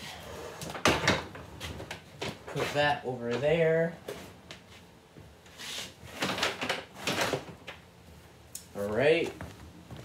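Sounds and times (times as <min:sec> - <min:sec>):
scraping rustling noises: 0:02.5 - 0:03.4, 0:05.5 - 0:06.4.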